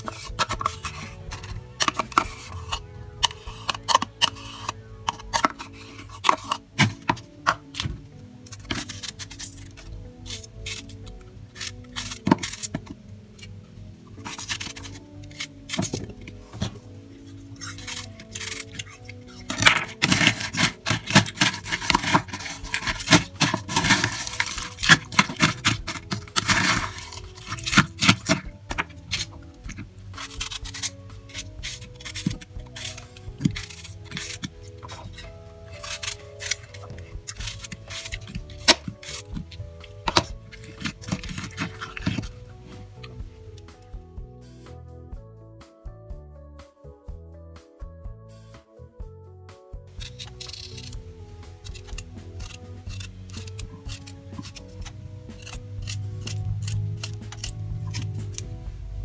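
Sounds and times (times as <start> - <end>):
knife cutting apple: 0.0 - 13.5, 14.1 - 43.7, 50.0 - 58.6
background music: 0.0 - 59.0.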